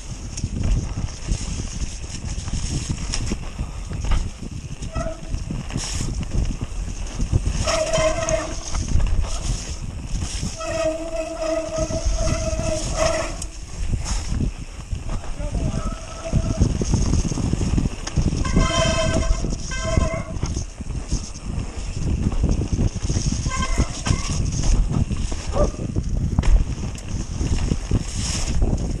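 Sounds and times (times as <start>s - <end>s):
bike tyres rumbling and rattling: 0.0s - 29.0s
bike whine: 0.0s - 29.0s
wind rushing over microphone: 0.0s - 29.0s.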